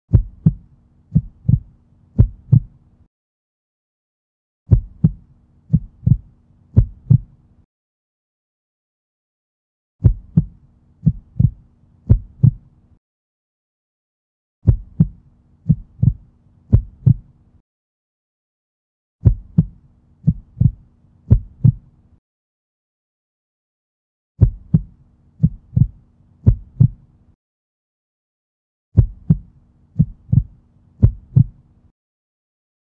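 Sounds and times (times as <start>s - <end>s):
heartbeat double thumps: 0.1s - 2.8s, 4.7s - 7.3s, 10.0s - 12.7s, 14.6s - 17.3s, 19.2s - 21.8s, 24.4s - 27.0s, 29.0s - 31.6s.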